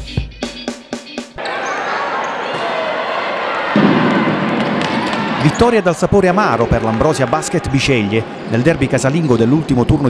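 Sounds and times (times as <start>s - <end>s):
crowd noise in sports hall: 1.3s - 10.0s.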